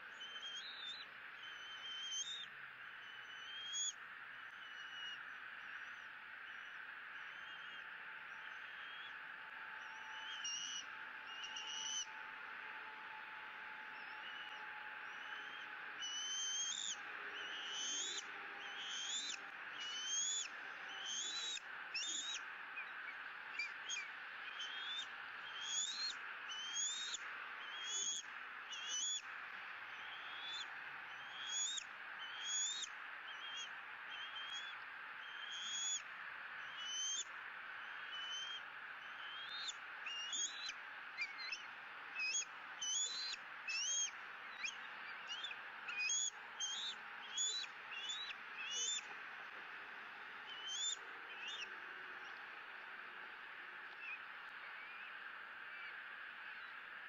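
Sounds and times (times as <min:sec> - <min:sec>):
young eagle begging chirps: 0:10.3 - 0:12.0, 0:14.3 - 0:22.4, 0:23.6 - 0:29.2, 0:30.0 - 0:36.0, 0:36.6 - 0:37.2, 0:37.8 - 0:49.0, 0:50.5 - 0:51.7.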